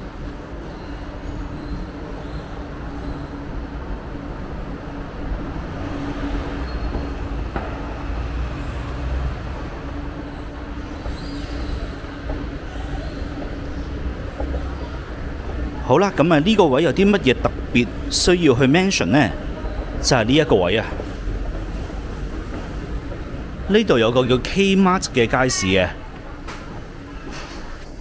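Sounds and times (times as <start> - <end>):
escalator mechanical hum: 0.0 - 28.0.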